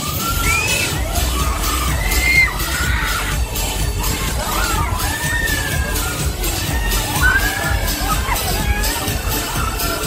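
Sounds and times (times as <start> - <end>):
riders screaming: 0.0 - 3.4, 4.4 - 9.6
ride music with heavy bass beat: 0.0 - 10.0.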